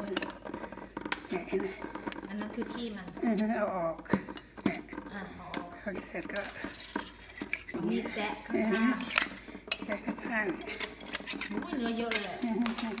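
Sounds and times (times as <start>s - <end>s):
knife scraping clam shell: 6.1s - 13.0s.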